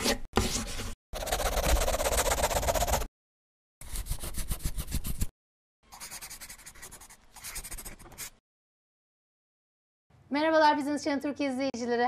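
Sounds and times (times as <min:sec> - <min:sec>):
pen scratching on paper: 0:01.2 - 0:03.1, 0:03.8 - 0:05.3, 0:05.9 - 0:08.4.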